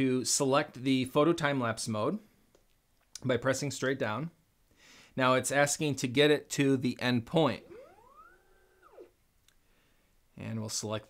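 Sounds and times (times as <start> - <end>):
motor whine: 7.6 - 9.1.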